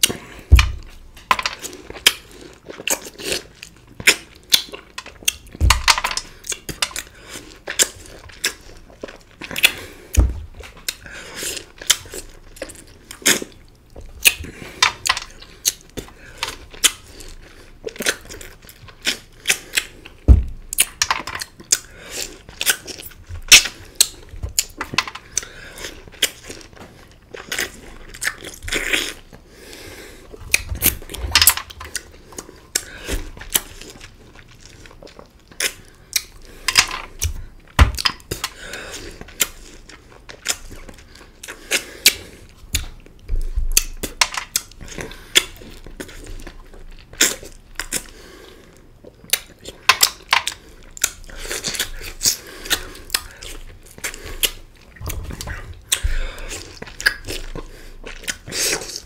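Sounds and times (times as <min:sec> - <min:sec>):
heavy thumps: 0:10.1 - 0:10.7, 0:20.3 - 0:20.6
wet sucking and smacking mouth sounds: 0:48.8 - 0:59.0.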